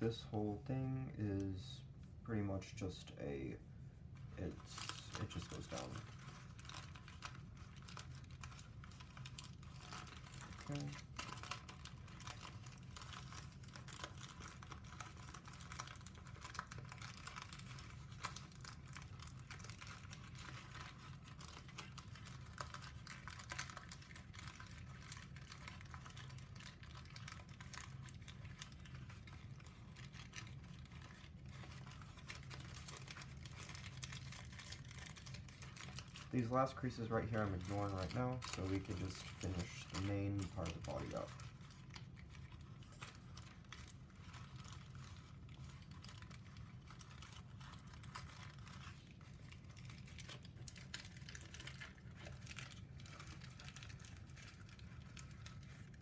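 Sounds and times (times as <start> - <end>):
low steady hum: 0.0 - 56.0
paper rustling and crinkling: 4.1 - 56.0.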